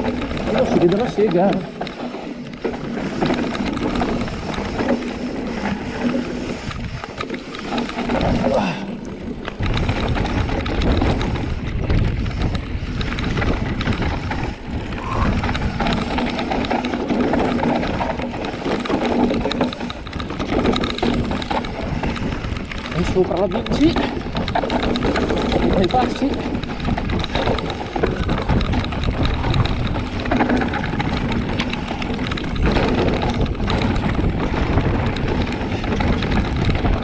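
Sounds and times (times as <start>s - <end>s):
bike rattling over bumps: 0.0s - 37.0s
bike tyres rolling over dirt: 0.0s - 37.0s
wind buffeting microphone: 0.0s - 37.0s.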